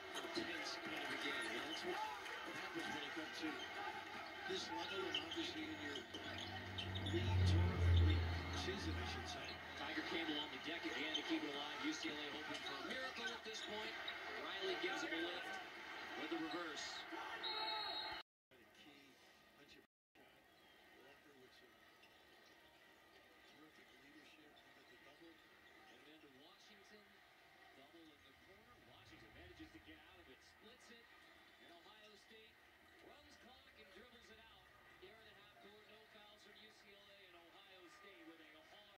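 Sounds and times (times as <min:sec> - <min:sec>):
faint tv sports commentary: 0:00.0 - 0:39.0.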